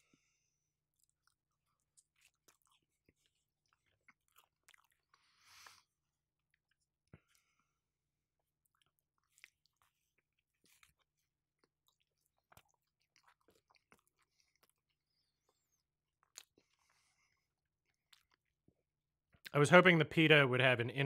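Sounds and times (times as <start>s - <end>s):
chewing bread: 0.0s - 19.5s
mouth clicks and smacks: 11.6s - 16.9s.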